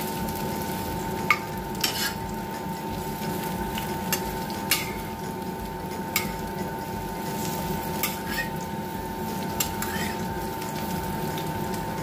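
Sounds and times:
food sizzling in hot oil: 0.0 - 12.0
spatula tapping and scraping pan: 1.3 - 2.2, 3.8 - 5.1, 8.0 - 8.6, 9.6 - 10.2.

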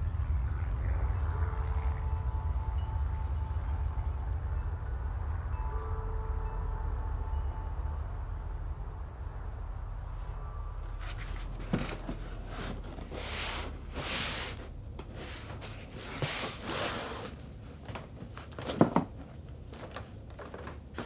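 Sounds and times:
cardboard scraping and rustling: 11.0 - 19.2.

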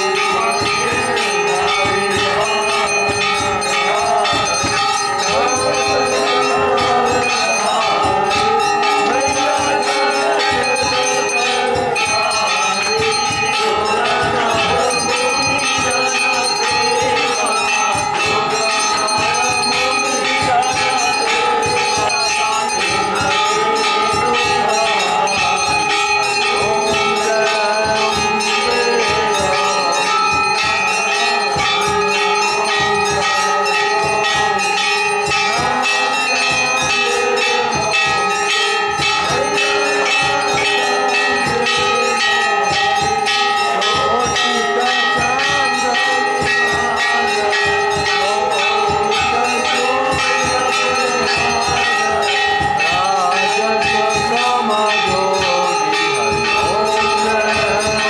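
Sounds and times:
crowd voices: 0.0 - 58.0
temple bells ringing rapidly: 0.0 - 58.0.

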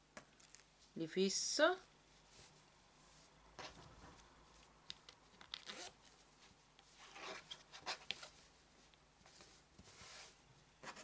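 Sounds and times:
fabric rustling and scraping: 2.0 - 4.8, 5.6 - 11.0.

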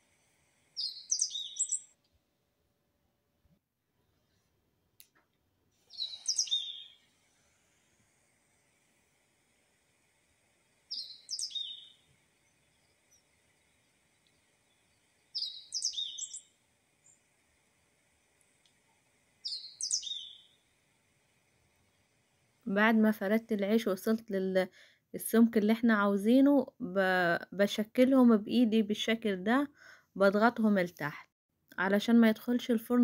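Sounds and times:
small bird singing: 0.7 - 2.0, 5.8 - 7.2, 10.7 - 17.3, 19.4 - 20.8.

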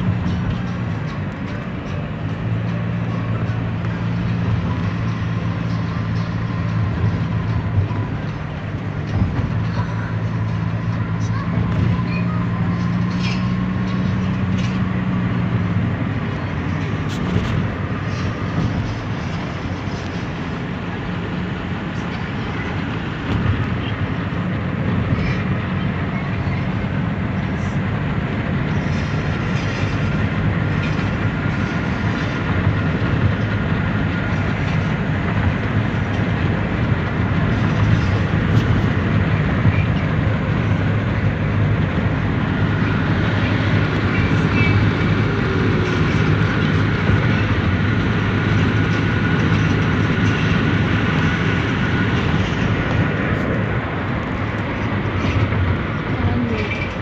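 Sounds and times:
engine and tyre hum: 0.0 - 57.0
wind and road noise rush: 0.0 - 57.0.

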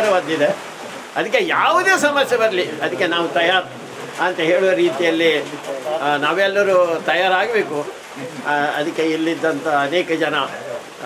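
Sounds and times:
man speaking: 0.0 - 0.6, 1.2 - 11.0.

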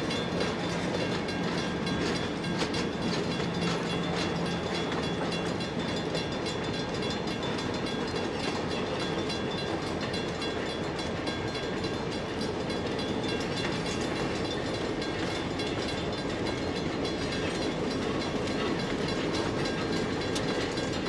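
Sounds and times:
diesel locomotive: 0.0 - 21.0
train wheels rumbling on rails: 0.0 - 21.0.

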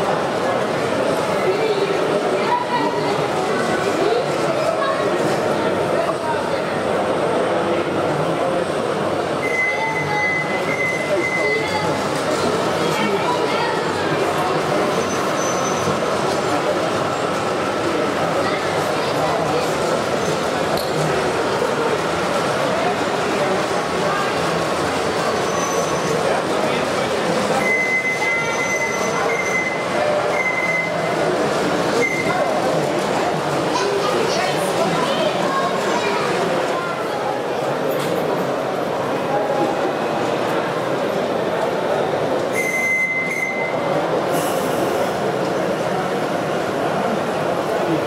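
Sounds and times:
chatter of crowd in hall: 0.0 - 48.0
model train running: 0.0 - 48.0
thin high squeal: 14.9 - 15.9.

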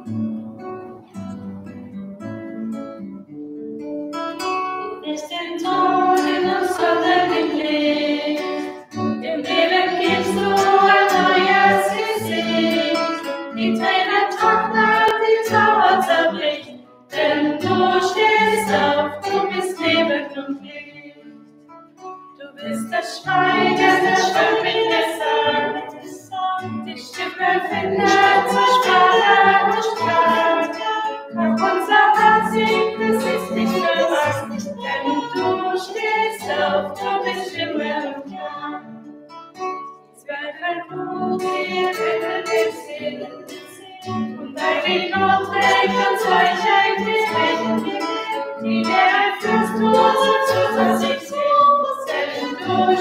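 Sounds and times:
acoustic guitar: 0.0 - 53.0
group singing a hymn: 5.1 - 21.4, 22.4 - 39.1, 40.3 - 53.0.

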